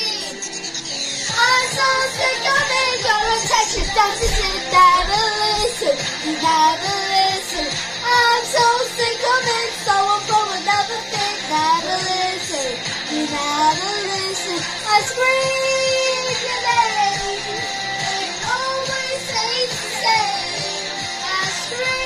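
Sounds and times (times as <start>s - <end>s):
pop song with high vocals: 0.0s - 22.0s.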